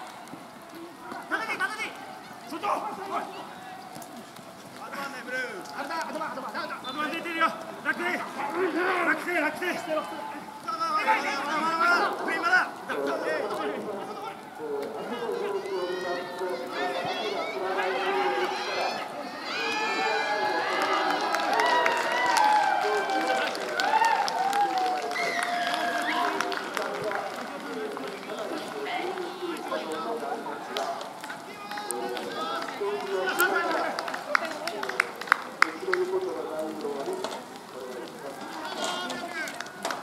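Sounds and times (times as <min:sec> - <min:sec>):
people shouting and calling out: 0:00.0 - 0:40.0.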